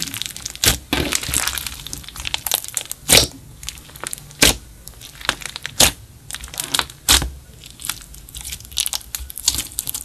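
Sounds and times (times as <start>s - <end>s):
sticky slime crackles and pops: 0.0s - 10.0s.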